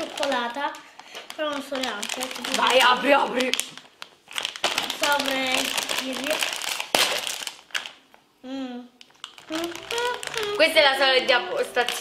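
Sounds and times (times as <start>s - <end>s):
plastic snack bag crinkling: 0.0s - 8.1s, 9.0s - 12.0s
voices: 9.5s - 12.0s.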